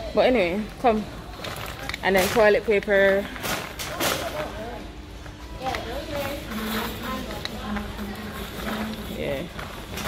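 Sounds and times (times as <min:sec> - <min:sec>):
faint voices: 0:00.0 - 0:10.0
shopping cart rolling on tiles: 0:00.2 - 0:10.0.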